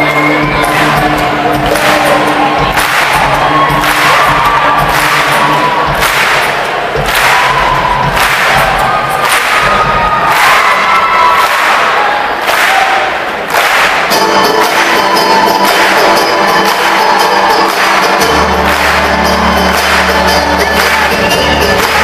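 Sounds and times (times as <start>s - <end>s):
live band music: 0.0s - 10.7s, 13.6s - 22.0s
crowd voices and whoops: 0.0s - 13.4s, 14.6s - 22.0s
audience clapping in time: 0.0s - 22.0s.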